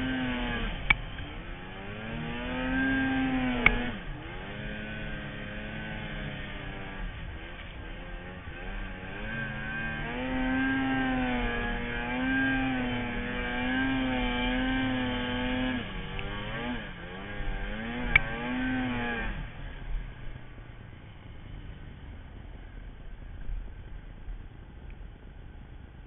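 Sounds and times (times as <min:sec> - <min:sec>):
snowmobile engine revving: 0:00.0 - 0:20.7.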